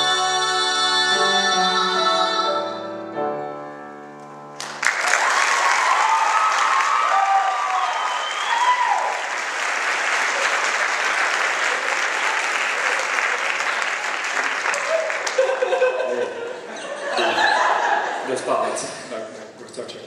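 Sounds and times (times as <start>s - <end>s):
audience applauding: 4.6s - 16.5s.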